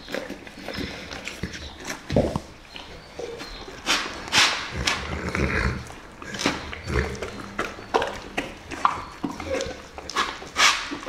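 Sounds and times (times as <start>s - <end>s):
dog chewing and lip-smacking: 0.0s - 11.0s
dog slurping and snuffling: 0.0s - 11.0s.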